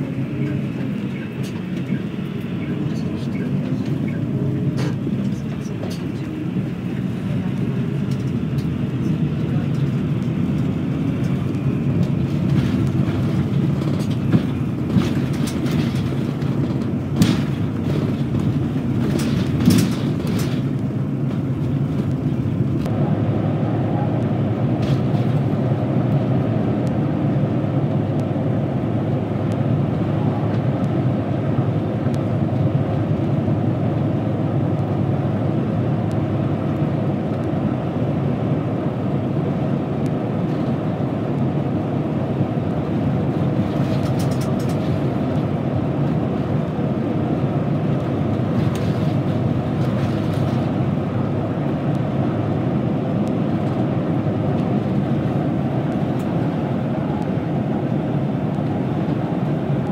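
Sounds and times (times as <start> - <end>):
bus engine and road rumble: 0.0 - 59.9
sharp clicks and rattles: 43.6 - 45.4.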